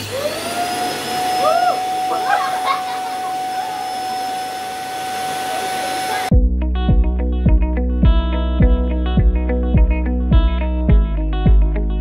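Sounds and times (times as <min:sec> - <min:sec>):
vacuum cleaner motor whining: 0:00.0 - 0:06.3.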